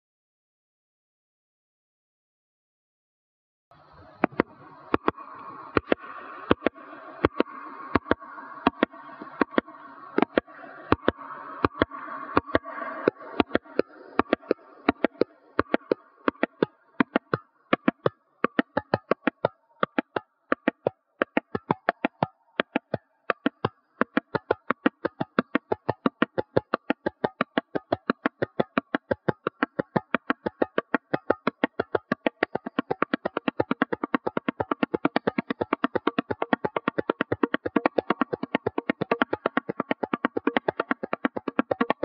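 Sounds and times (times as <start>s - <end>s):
tabla drumming: 13.4s - 42.0s.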